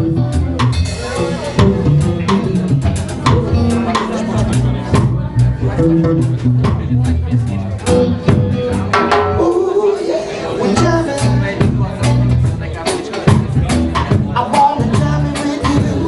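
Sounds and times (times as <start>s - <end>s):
bass guitar: 0.0s - 16.0s
drum kit beat: 0.0s - 16.0s
electric guitar: 0.0s - 16.0s.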